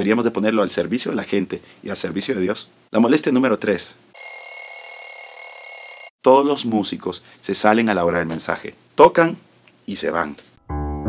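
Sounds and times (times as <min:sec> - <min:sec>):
high ringing tones: 0:04.2 - 0:06.1.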